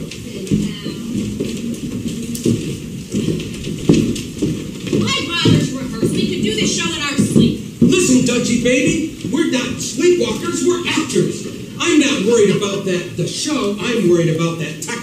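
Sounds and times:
voices on stage: 0.0 - 2.5, 5.0 - 15.0.

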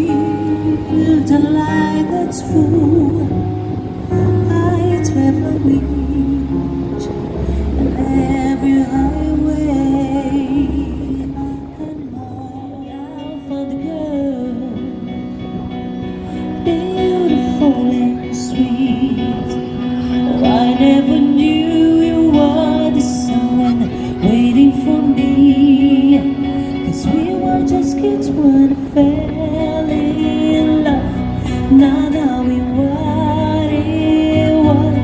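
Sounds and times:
acoustic guitar: 0.0 - 35.0
woman singing: 0.0 - 35.0.

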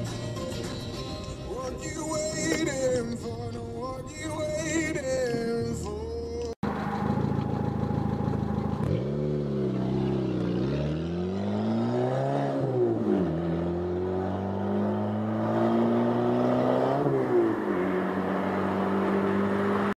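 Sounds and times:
vehicle engine revving: 6.6 - 19.9.

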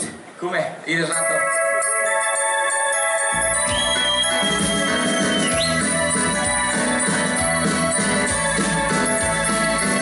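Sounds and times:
dance band playing a waltz: 1.3 - 10.0.

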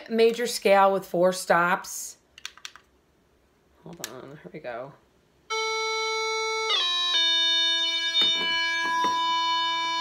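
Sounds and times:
faint knocks: 8.2 - 9.3.

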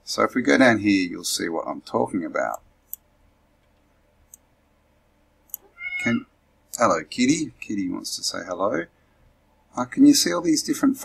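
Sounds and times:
cat meowing: 5.6 - 6.3.

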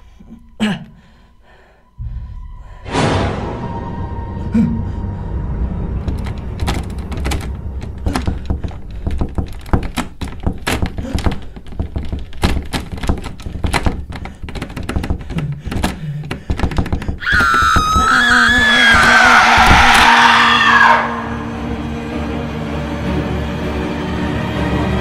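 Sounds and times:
low music drone: 0.0 - 9.1, 19.4 - 25.0
man screaming: 17.2 - 21.5.

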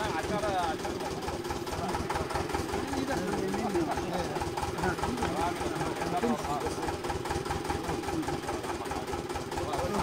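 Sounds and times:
rig engine idling: 0.0 - 10.0.

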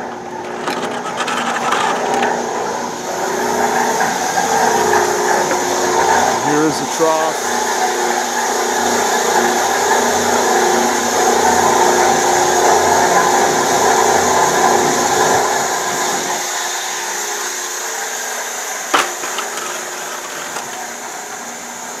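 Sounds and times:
mixer motor running: 0.0 - 16.4, 18.8 - 22.0.

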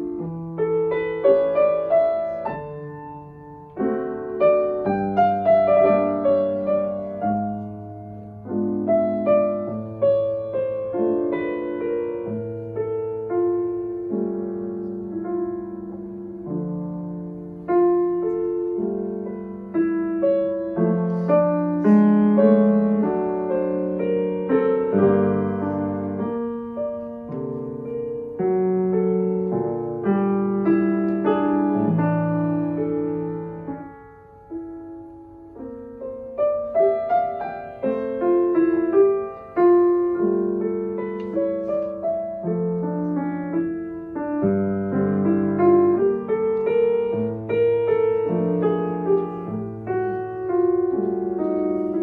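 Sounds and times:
grand piano playing slowly: 0.0 - 52.0.

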